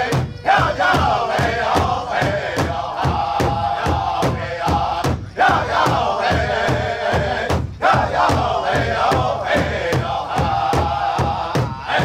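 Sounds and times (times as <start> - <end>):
large drum beating: 0.0 - 12.0
men singing in unison: 0.0 - 12.0.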